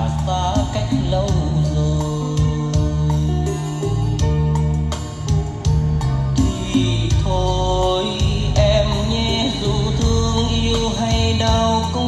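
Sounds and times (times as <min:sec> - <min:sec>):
instrumental ballad through speakers: 0:00.0 - 0:12.0
strong bass line: 0:00.0 - 0:12.0.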